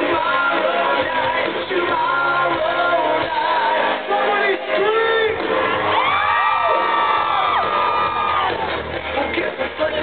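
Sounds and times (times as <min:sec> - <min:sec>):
live rock band playing: 0:00.0 - 0:10.0
crowd cheering: 0:03.1 - 0:10.0.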